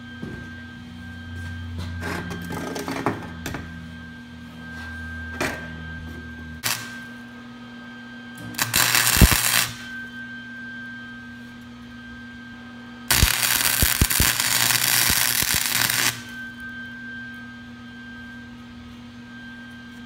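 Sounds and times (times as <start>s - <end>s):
steady hum: 0.0s - 20.0s
welder arc crackling: 6.6s - 7.0s, 8.6s - 9.9s, 13.1s - 16.4s.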